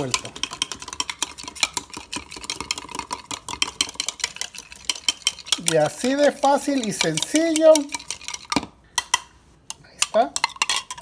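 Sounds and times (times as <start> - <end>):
metal spoon clinking glass: 9.7 - 11.0.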